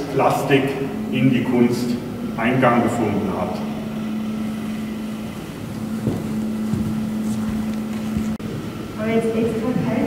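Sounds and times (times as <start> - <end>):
rumbling background noise: 0.0 - 10.0
steady low hum: 0.0 - 10.0
soft low thumps: 4.4 - 8.4.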